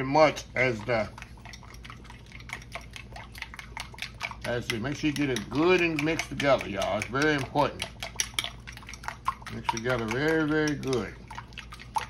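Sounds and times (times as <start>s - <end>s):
wet slosh: 0.0s - 12.0s
fork clicking against bowl: 1.2s - 12.0s.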